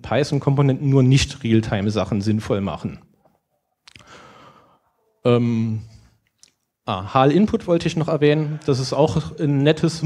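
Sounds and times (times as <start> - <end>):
mouth click: 3.8 - 4.1
man breathing softly: 4.0 - 5.0.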